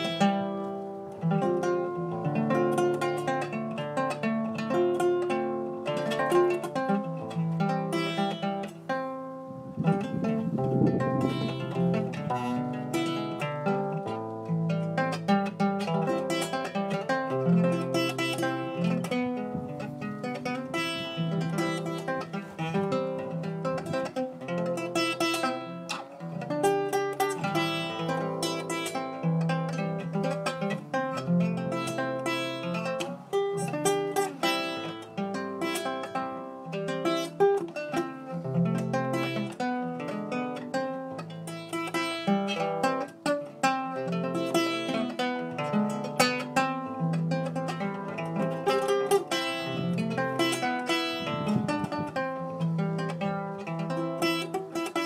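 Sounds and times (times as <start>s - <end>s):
guitar playing plucked notes: 0.0s - 55.0s.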